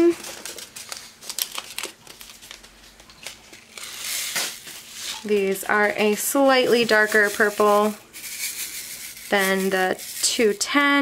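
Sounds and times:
plastic bag crinkling: 0:00.0 - 0:10.6
beads pouring into plastic tray: 0:06.0 - 0:10.6.

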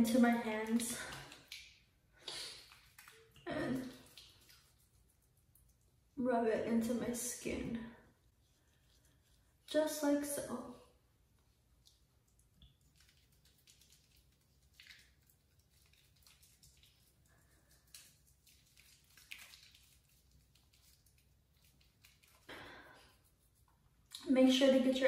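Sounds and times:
fingertips squishing lather on skin: 0:00.5 - 0:06.0, 0:08.2 - 0:09.7, 0:11.8 - 0:24.2.

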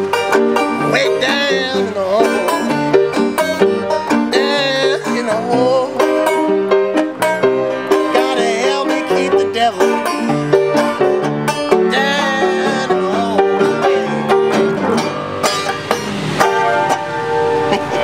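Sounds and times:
banjo picking quick notes: 0:00.0 - 0:18.0
piano chords: 0:00.0 - 0:18.0.

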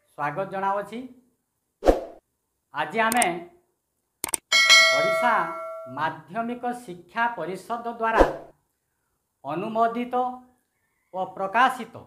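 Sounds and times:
man speaking: 0:02.8 - 0:03.5, 0:05.0 - 0:08.1.

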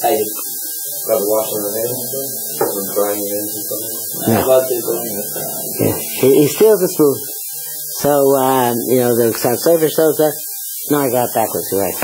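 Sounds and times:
recording hiss and hum: 0:00.0 - 0:11.0
man vocalising: 0:04.1 - 0:06.6.

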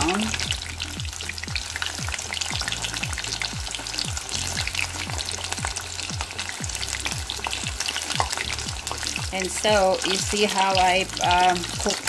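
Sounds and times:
fish deep-frying in oil: 0:00.0 - 0:12.0
low thumping beat: 0:00.0 - 0:12.0.

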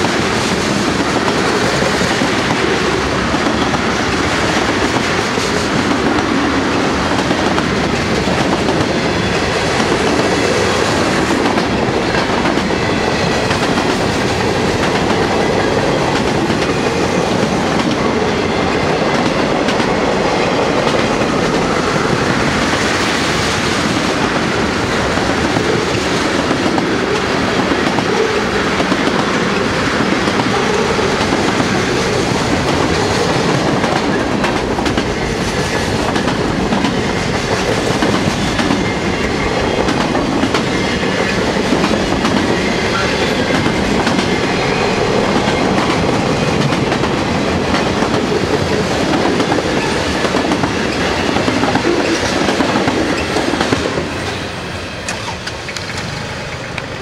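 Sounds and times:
freight train wheels rumbling on rail: 0:00.0 - 0:57.0.

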